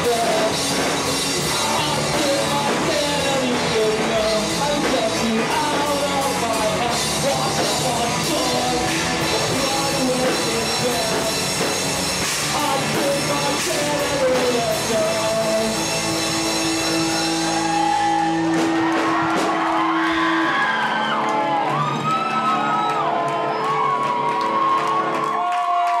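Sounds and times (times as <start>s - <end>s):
crowd cheering and whooping: 16.6s - 26.0s.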